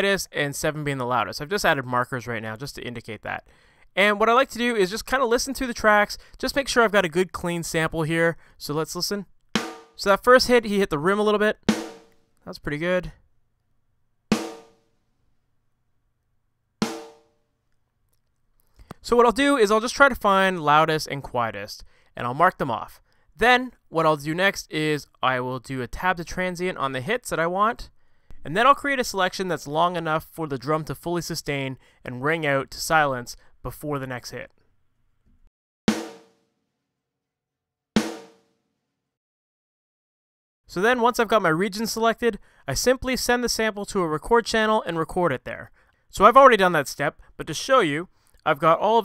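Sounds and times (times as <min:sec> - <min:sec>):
snare drum hits: 0:09.6 - 0:10.0, 0:11.7 - 0:12.2, 0:14.3 - 0:14.8, 0:16.8 - 0:17.2, 0:35.9 - 0:36.4, 0:38.0 - 0:38.4.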